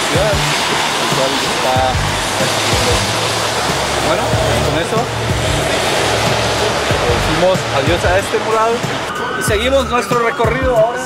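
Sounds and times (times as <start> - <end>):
car cabin road and engine noise: 0.0 - 10.1.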